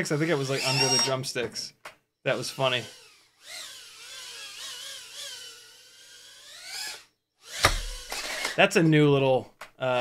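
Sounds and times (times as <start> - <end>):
small drone motors whining: 0.2 - 1.2, 2.3 - 8.6.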